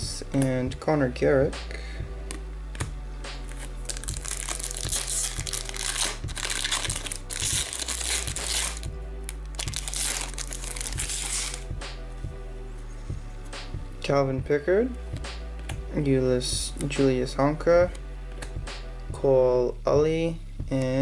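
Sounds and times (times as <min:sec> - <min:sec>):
background music with beat: 0:00.0 - 0:21.0
trading cards rustling: 0:02.3 - 0:11.6.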